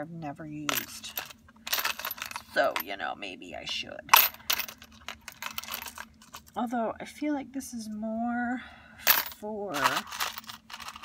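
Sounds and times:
metal charms clinking in plastic box: 0.7s - 2.9s, 4.1s - 6.5s, 9.1s - 11.0s.

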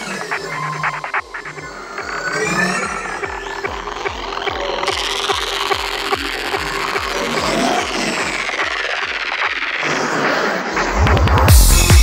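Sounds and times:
kick drum beat: 10.8s - 12.0s.

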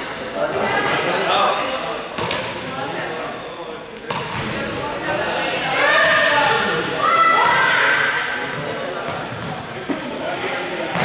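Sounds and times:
chatter echoing in a hall: 0.0s - 11.0s.

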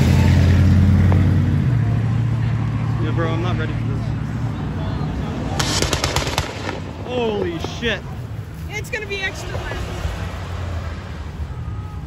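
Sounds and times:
car engine rumble: 0.0s - 12.0s
exhaust pops and bangs: 5.6s - 7.8s.

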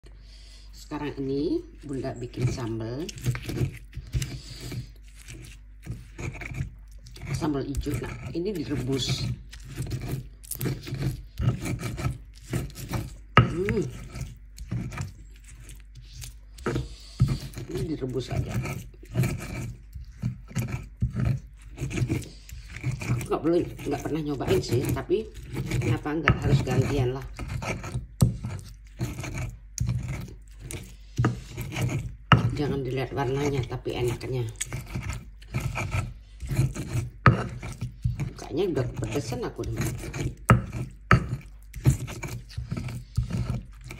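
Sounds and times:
stone pestle grinding on mortar: 0.8s - 43.9s.

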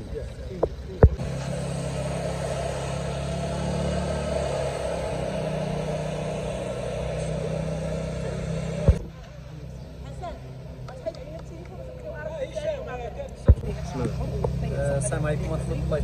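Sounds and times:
people's voices: 0.0s - 16.0s
low motor-like hum: 0.1s - 16.0s.

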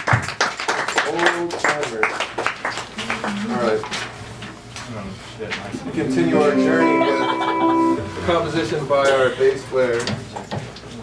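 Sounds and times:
electric guitar chord ringing: 5.9s - 9.0s.

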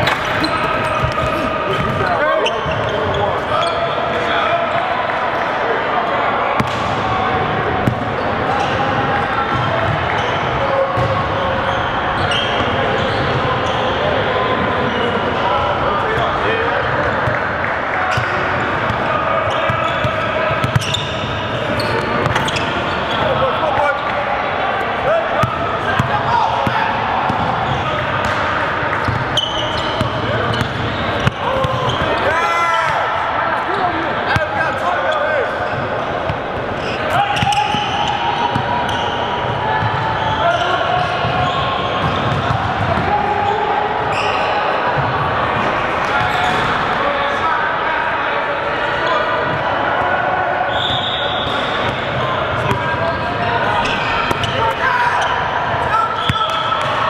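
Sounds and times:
players talking and calling out: 0.0s - 57.0s.

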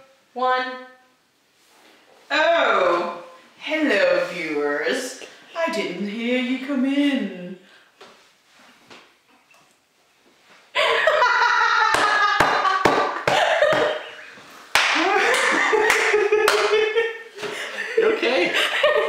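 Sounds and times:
loud laughter: 10.8s - 14.2s, 14.9s - 19.0s
hand claps: 11.9s - 14.0s, 14.7s - 16.8s.

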